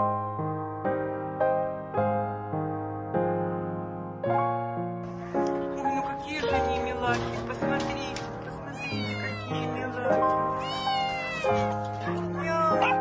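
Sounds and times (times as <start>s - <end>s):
background piano music: 0.0s - 13.0s
cats meowing: 7.7s - 13.0s.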